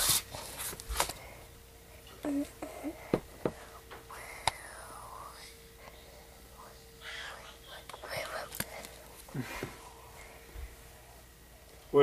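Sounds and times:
soft whispering: 0:02.2 - 0:10.3.

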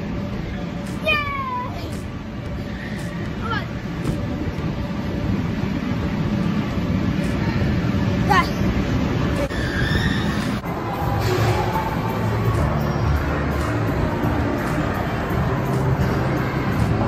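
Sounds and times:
arcade game machines: 0:00.0 - 0:17.0
gliding squeals: 0:09.4 - 0:13.3
crowd chatter: 0:10.6 - 0:17.0.

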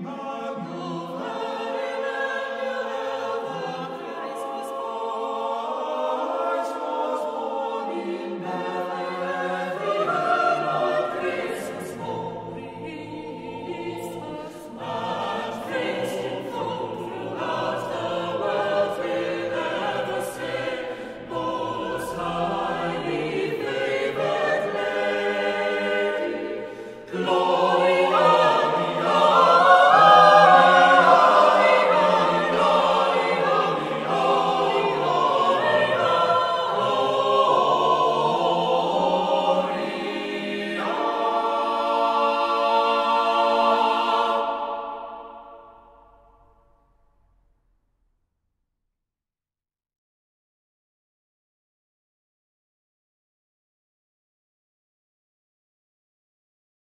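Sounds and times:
choir singing unaccompanied: 0:00.0 - 0:46.3.

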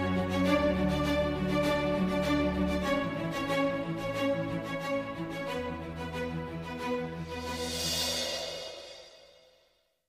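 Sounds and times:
background music: 0:00.0 - 0:09.6
cymbal crash ringing: 0:07.6 - 0:09.7.

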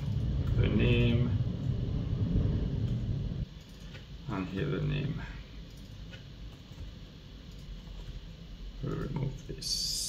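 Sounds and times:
low rumble: 0:00.0 - 0:03.5.

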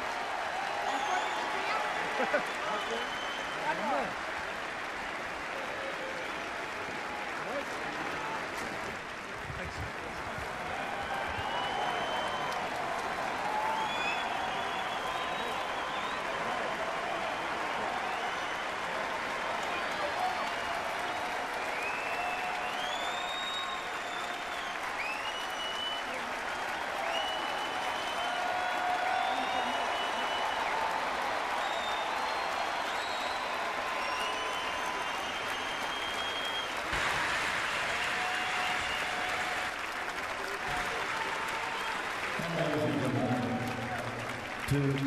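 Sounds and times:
crowd applauding: 0:00.0 - 0:45.0.

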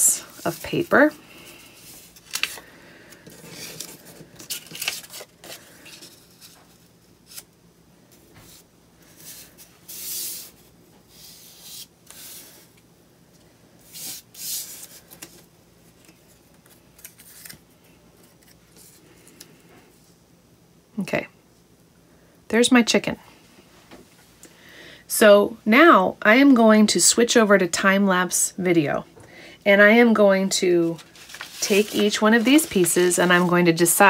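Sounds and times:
paper pieces rustling on board: 0:01.8 - 0:07.4, 0:30.8 - 0:33.8.

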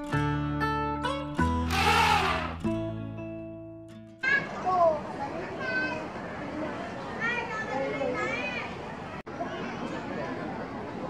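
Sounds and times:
children calling out: 0:01.7 - 0:02.6
background chatter: 0:04.2 - 0:11.0.

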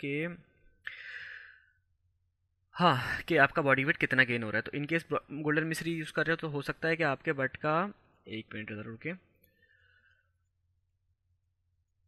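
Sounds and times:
man speaking: 0:02.8 - 0:09.2.

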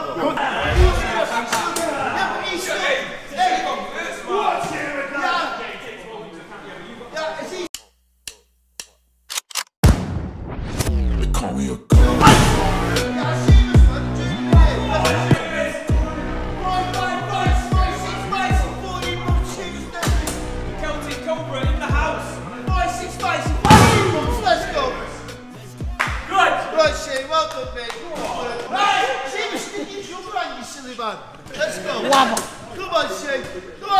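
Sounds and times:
indistinct voices: 0:00.0 - 0:02.7, 0:11.2 - 0:25.9
music: 0:10.8 - 0:29.0
gunshot-like cracks: 0:23.7 - 0:24.2.

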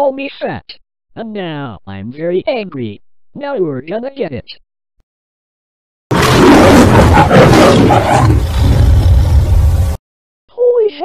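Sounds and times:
loud harsh angry roar: 0:06.1 - 0:10.0.

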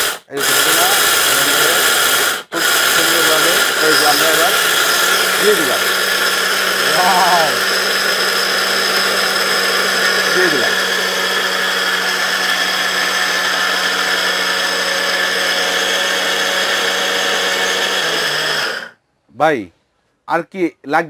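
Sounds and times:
mixer grinder motor whine: 0:00.0 - 0:19.0.

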